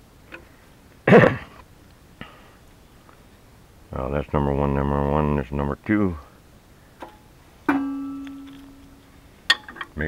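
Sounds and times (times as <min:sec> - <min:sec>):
metal wrench striking metal: 0:07.7 - 0:08.9.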